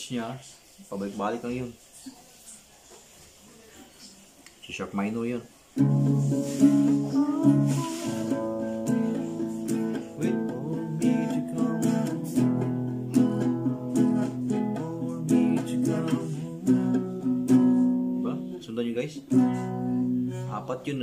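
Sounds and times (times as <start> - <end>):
nylon-string guitar strumming chords: 5.8 - 21.0.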